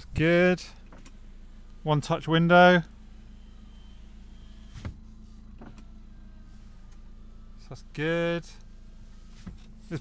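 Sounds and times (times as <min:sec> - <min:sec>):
diesel engine idling hum: 0:00.0 - 0:10.0
power window motor: 0:00.7 - 0:08.0, 0:08.6 - 0:10.0.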